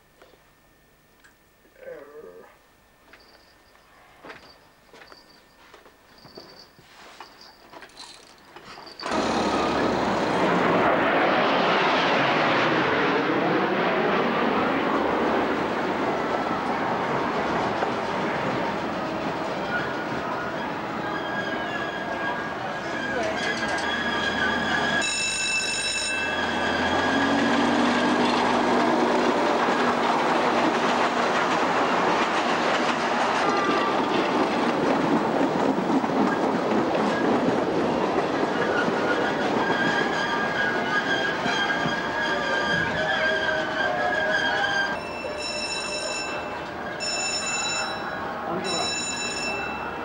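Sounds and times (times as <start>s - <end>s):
miniature train wheels clattering: 7.3s - 9.4s
train whistle toots: 20.7s - 28.1s, 39.0s - 45.8s.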